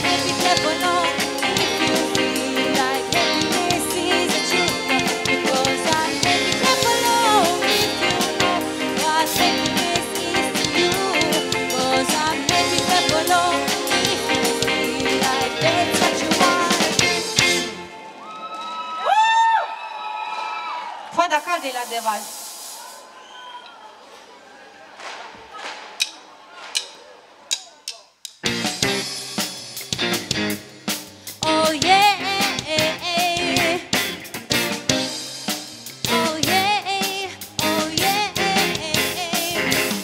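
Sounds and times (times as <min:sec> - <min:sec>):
woman singing: 0:00.0 - 0:17.4, 0:31.4 - 0:34.0, 0:36.1 - 0:40.0
live band music: 0:00.0 - 0:18.5, 0:26.0 - 0:40.0.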